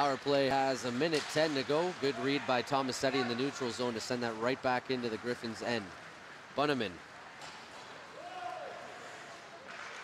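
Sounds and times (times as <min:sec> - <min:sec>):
faint arena ambience: 0:00.0 - 0:10.0
distant drawn-out shout: 0:08.1 - 0:09.0.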